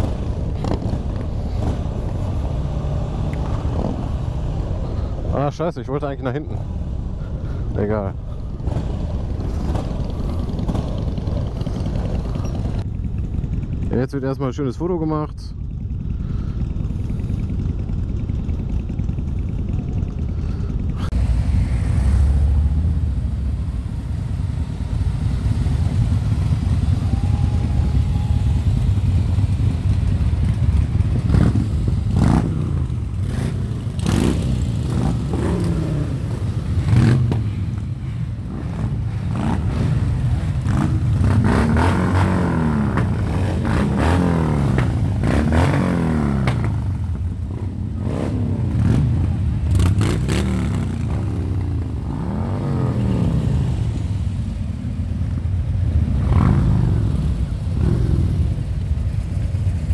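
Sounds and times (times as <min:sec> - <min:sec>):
low motorcycle engine rumble: 0:00.0 - 0:59.9
motorcycles revving past: 0:21.0 - 0:59.7.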